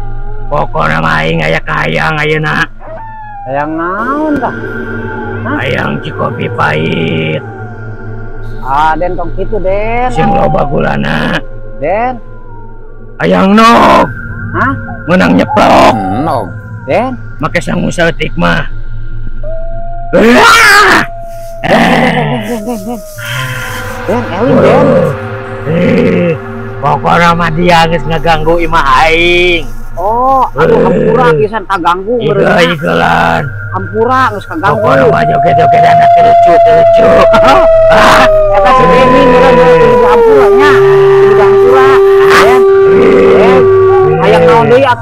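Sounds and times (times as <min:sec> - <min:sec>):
long steady howl: 0:00.0 - 0:31.4, 0:32.1 - 0:45.0
held background tone: 0:00.0 - 0:45.0
man groaning and growling: 0:10.1 - 0:11.4, 0:15.1 - 0:16.5, 0:20.2 - 0:26.4, 0:30.6 - 0:31.5, 0:34.6 - 0:45.0
man moaning: 0:21.6 - 0:26.4.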